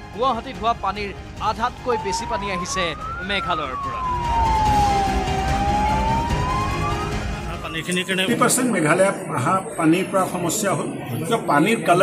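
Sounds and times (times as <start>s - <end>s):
emergency vehicle wail siren: 1.5s - 8.7s.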